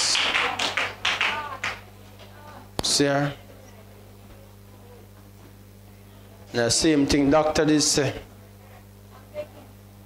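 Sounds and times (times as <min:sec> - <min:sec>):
people clapping: 0:00.0 - 0:02.4.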